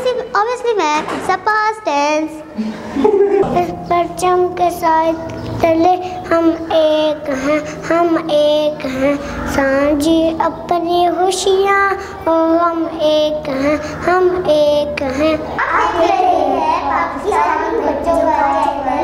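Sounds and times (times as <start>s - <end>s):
children singing: 3.3s - 19.0s.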